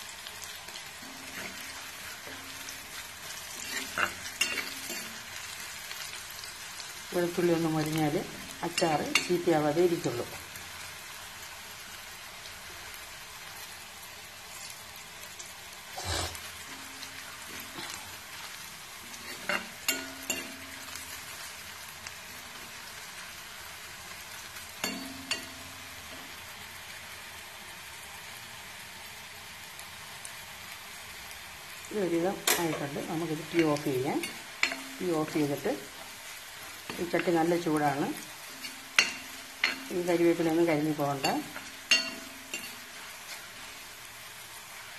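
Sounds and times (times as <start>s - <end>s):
oil sizzling: 0.0s - 44.9s
spoon clinking and scraping pan: 0.9s - 6.4s, 19.2s - 21.2s, 24.8s - 25.8s, 38.4s - 40.0s, 41.2s - 43.5s.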